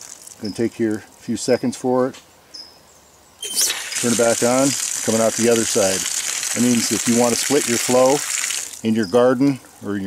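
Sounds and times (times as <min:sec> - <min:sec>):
water hissing through valve: 0:03.4 - 0:08.9.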